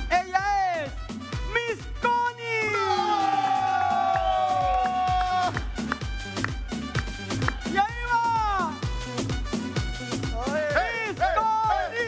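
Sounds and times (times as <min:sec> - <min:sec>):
upbeat dance music: 0:00.0 - 0:12.0.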